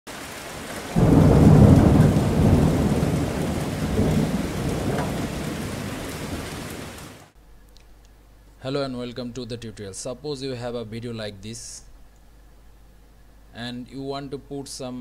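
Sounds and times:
steady rain hiss: 0:00.1 - 0:07.4
rolling thunder clap: 0:00.9 - 0:07.2.

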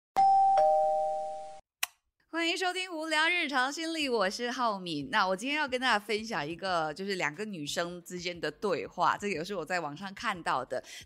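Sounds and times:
two-note doorbell chime: 0:00.2 - 0:01.6.

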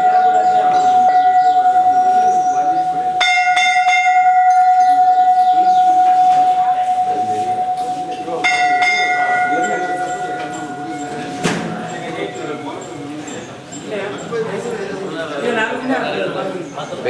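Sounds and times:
sharp bell strikes: 0:00.0 - 0:13.5
temple bell ringing steadily: 0:00.0 - 0:16.0.

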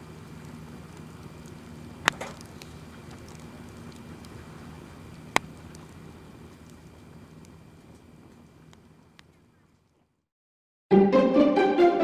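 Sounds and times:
wood fire crackling: 0:00.0 - 0:10.2.

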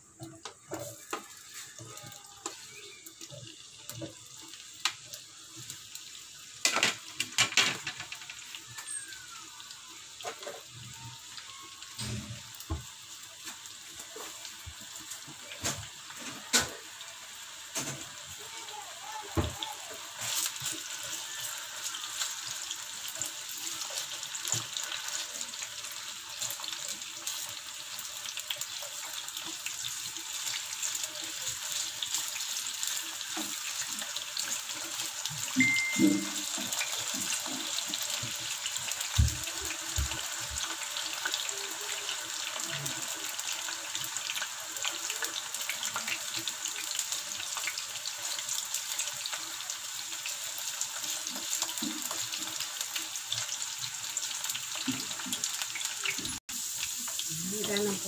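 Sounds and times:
food sizzling in oil: 0:00.0 - 0:58.0.

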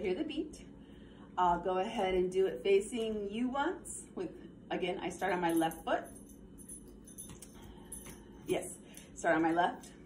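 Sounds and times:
metal coins jingling: 0:05.2 - 0:08.4.

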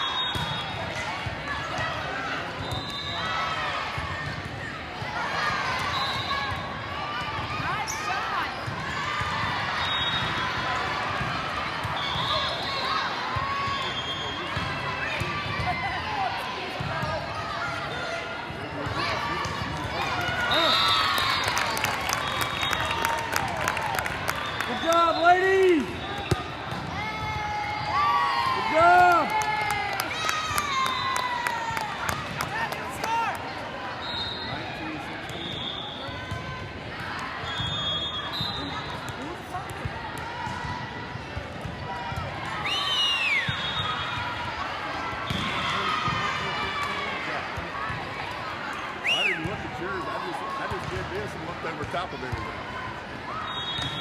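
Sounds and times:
short whistle blasts: 0:00.0 - 0:00.8, 0:34.0 - 0:34.6, 0:37.5 - 0:38.8, 0:42.6 - 0:44.1, 0:53.4 - 0:54.0
players and spectators calling out: 0:00.0 - 0:54.0.

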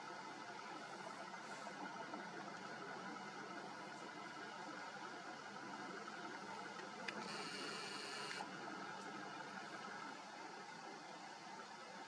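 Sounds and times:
faint steady hiss: 0:00.0 - 0:12.0
camera zoom motor whirring: 0:07.1 - 0:08.4.

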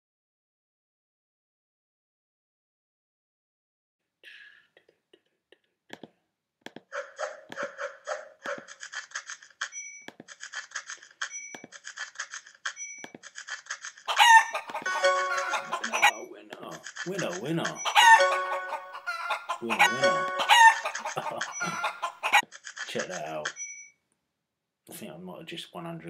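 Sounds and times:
rooster crow sound effect: 0:14.1 - 0:16.1, 0:17.8 - 0:22.4
rapid ticking: 0:15.8 - 0:18.0.

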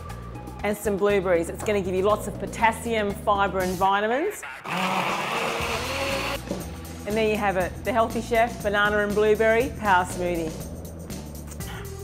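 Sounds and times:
background music: 0:00.0 - 0:12.0
electric blender running: 0:04.6 - 0:06.4.

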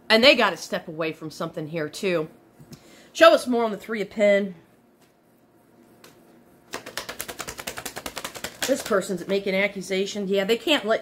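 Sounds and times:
cards being shuffled: 0:06.0 - 0:09.4.

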